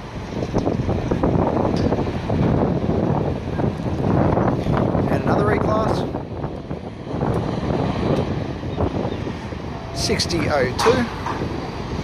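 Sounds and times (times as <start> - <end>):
tram noise: 0.0 - 5.1, 6.0 - 12.0
city street rumble: 0.0 - 12.0
wind buffeting microphone: 0.0 - 12.0.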